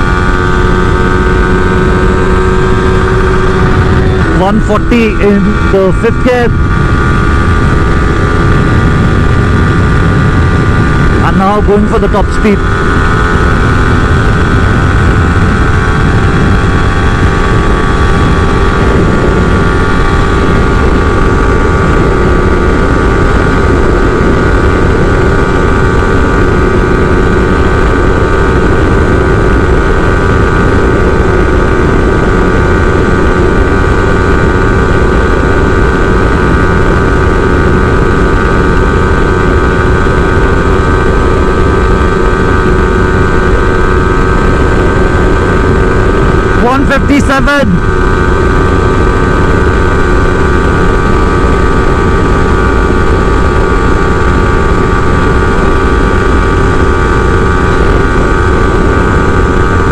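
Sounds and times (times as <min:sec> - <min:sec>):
loud wind rush: 0:00.0 - 0:59.9
motorcycle engine at high revs: 0:00.0 - 0:59.9.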